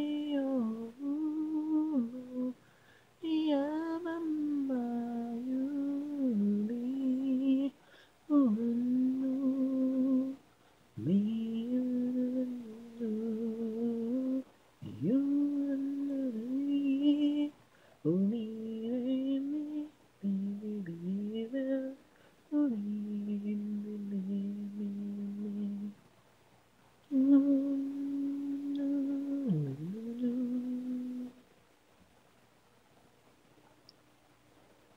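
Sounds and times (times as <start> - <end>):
person humming slow melody: 0.0 - 2.6, 3.2 - 10.4, 11.0 - 26.0, 27.0 - 31.4
person humming a held note: 27.1 - 31.4.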